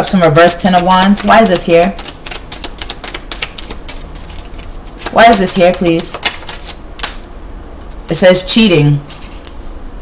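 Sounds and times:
cards being shuffled: 0.8s - 7.3s, 9.1s - 9.7s.

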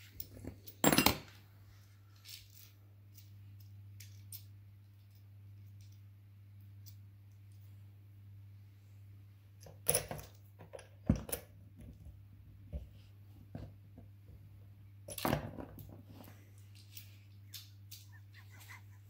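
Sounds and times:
saw chain clinking and rattling: 2.1s - 6.0s.

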